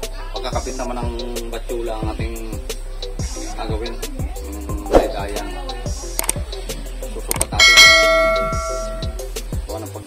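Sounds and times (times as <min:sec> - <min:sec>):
background music: 0:00.0 - 0:10.0
bell chime: 0:07.6 - 0:09.3.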